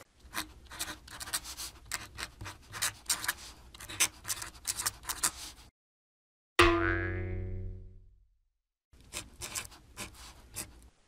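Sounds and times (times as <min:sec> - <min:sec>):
pen scratching on paper: 0:00.2 - 0:05.7, 0:09.0 - 0:10.8
cartoon boing twang: 0:06.6 - 0:08.1.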